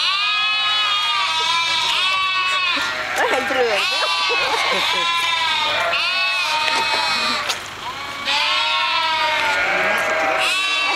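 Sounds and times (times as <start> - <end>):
sheep bleating: 0.0 - 10.9.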